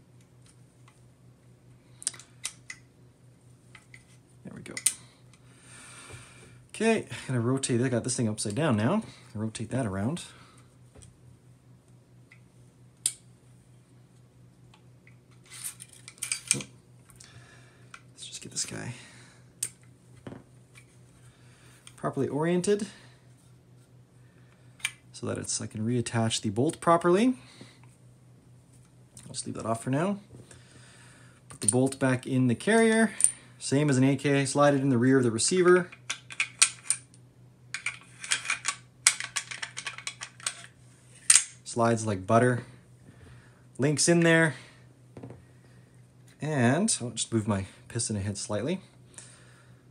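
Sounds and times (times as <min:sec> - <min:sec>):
rifle parts clicking and clinking: 0:15.4 - 0:16.7, 0:35.9 - 0:41.6.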